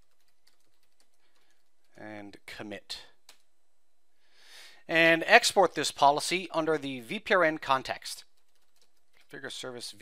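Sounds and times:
computer keyboard typing: 0.0s - 2.0s, 8.4s - 9.4s.

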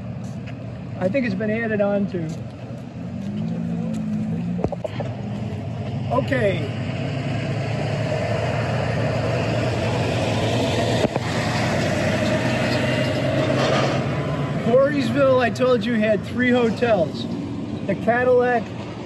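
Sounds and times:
diesel truck engine droning: 0.0s - 19.0s
road traffic: 0.0s - 19.0s.

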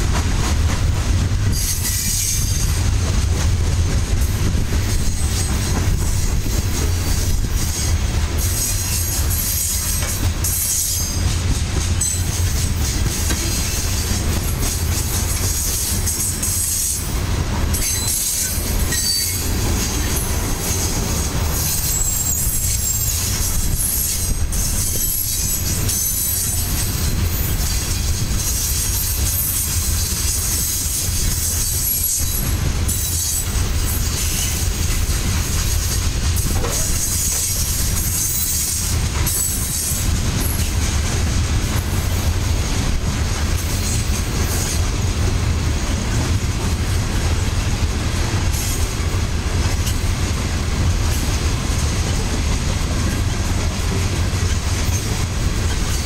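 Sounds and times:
steel wheels rumbling on rail: 0.0s - 56.0s
high wheel squeals: 17.8s - 20.9s, 21.5s - 33.4s.

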